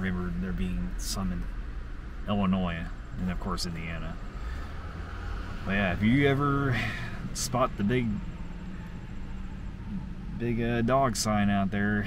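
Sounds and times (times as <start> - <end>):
low rumble inside car cabin: 0.0 - 12.0.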